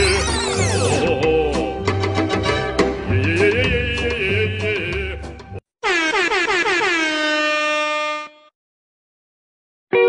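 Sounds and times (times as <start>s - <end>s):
air horn blast: 5.8s - 8.5s.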